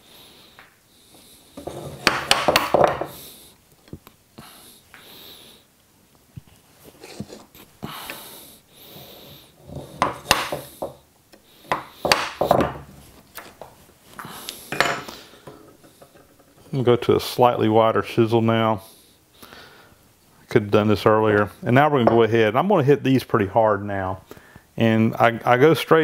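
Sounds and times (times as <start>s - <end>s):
chisel clicking on wooden bench: 1.6s - 3.1s, 10.0s - 11.0s
chisel scraping wood: 1.6s - 3.2s, 9.6s - 11.0s.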